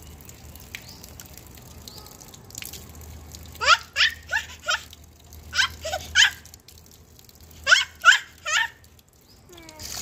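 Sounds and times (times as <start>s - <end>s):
outdoor tap trickling: 0.0s - 10.0s.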